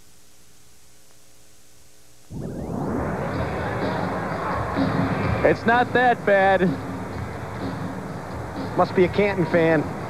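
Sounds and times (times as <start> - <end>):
faint steady hiss: 0.0 - 10.0
loud arena sound: 2.3 - 10.0.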